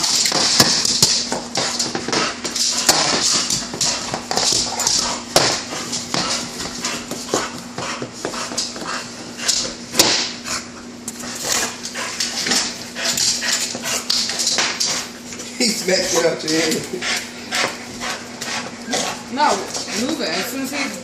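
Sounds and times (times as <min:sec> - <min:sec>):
dog claws on wooden floor: 0:00.0 - 0:10.4, 0:11.0 - 0:21.0.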